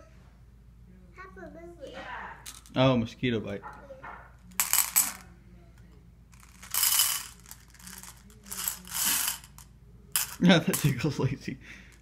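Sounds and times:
pieces rattling in plastic container: 6.4s - 9.5s.

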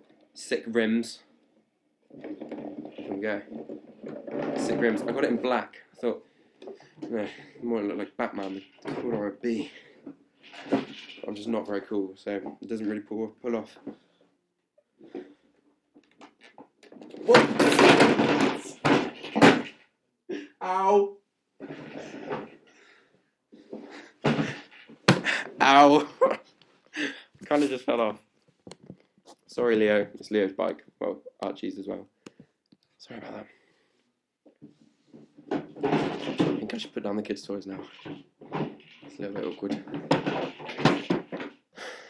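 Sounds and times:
young man speaking: 0.4s - 1.3s, 4.4s - 6.3s, 7.0s - 10.0s, 20.3s - 21.2s, 25.3s - 28.2s, 33.0s - 33.6s, 36.5s - 38.0s, 39.1s - 39.9s
toy and body clattering to floor: 2.1s - 14.1s, 15.0s - 19.9s, 21.6s - 26.5s, 34.6s - 41.7s.

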